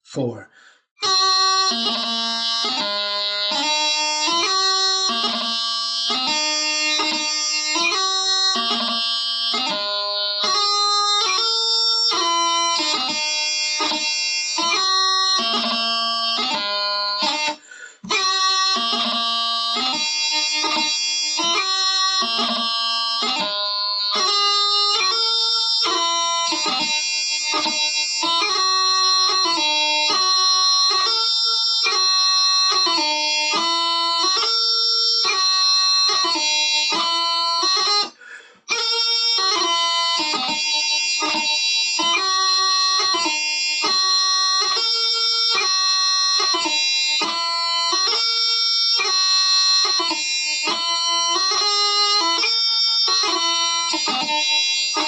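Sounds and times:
practice chanter melody: 1.0 - 55.0.

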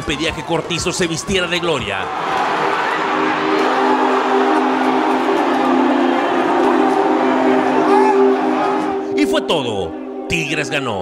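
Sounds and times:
stadium crowd noise: 0.0 - 9.5
steady horn-like chord: 2.7 - 10.3.

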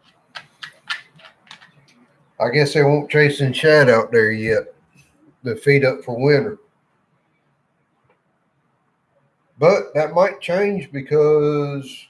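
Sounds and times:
laptop keys clicking: 0.0 - 2.0.

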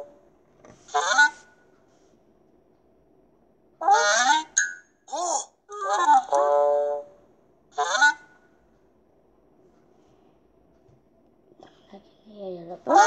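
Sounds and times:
cartoon honking calls: 0.9 - 1.6, 3.8 - 7.1, 7.7 - 8.5
ding: 4.6 - 5.0.

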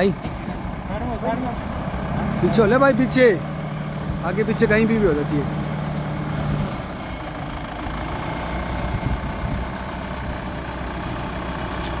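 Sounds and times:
tractor engine idling: 0.0 - 12.0.

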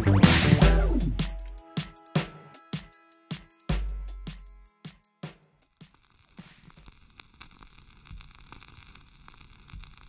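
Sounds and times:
crackling static and hiss: 5.6 - 10.0.

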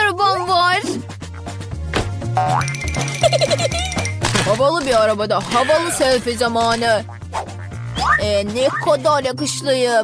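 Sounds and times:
background music with low beat: 0.4 - 9.3.

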